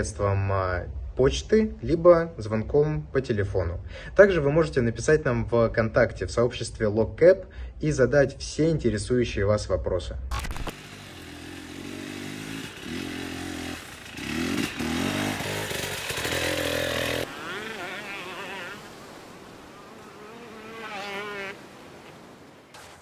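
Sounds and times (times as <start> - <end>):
dirt bike engine revving: 10.4 - 19.0, 19.9 - 21.6.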